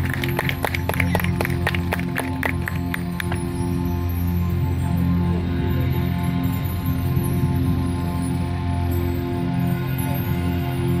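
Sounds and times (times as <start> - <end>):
sustained low chord: 0.0 - 11.0.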